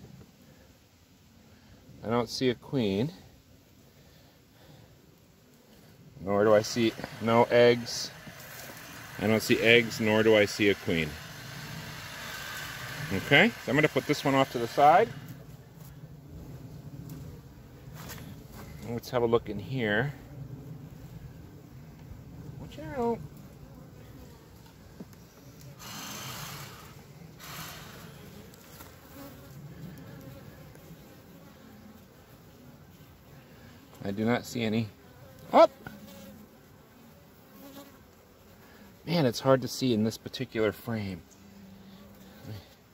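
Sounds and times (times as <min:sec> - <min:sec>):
background hiss: 0:00.0 - 0:42.9
honey bees humming: 0:03.5 - 0:42.9.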